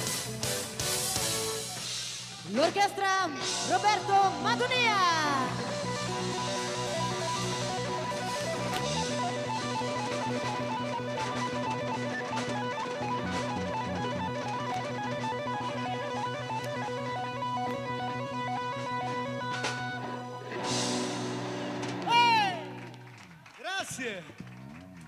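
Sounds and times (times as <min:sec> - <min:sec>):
electric guitar: 0:00.0 - 0:23.5
live dance band playing: 0:00.0 - 0:24.2
keyboard: 0:00.0 - 0:25.0
sustained bass line: 0:03.5 - 0:23.2.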